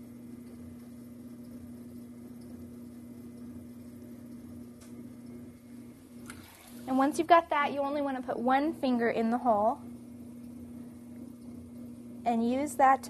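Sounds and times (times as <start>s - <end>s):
potter's wheel motor humming: 0.0s - 13.0s.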